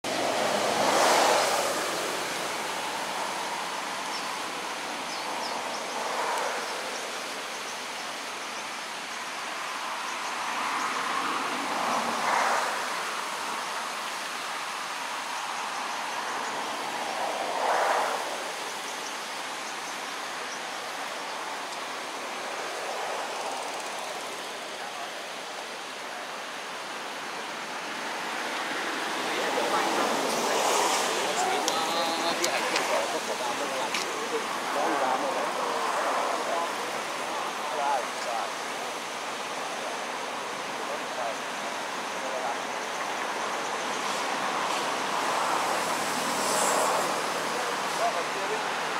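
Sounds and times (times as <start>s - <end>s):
water rushing over a weir: 0.0s - 48.9s.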